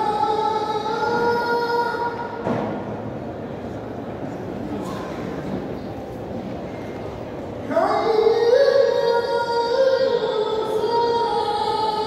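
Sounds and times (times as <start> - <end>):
call to prayer over loudspeakers: 0.0 - 2.7, 7.6 - 12.0
murmur of congregation: 0.0 - 12.0.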